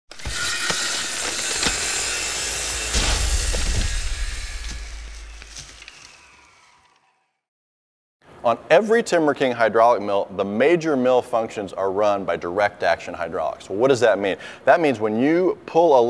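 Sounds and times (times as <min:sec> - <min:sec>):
heavy hit with deep rumble: 0:02.8 - 0:05.5.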